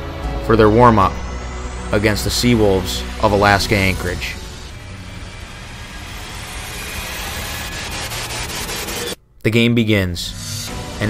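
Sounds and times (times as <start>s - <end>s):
low hum: 0.0s - 9.5s, 10.2s - 11.0s.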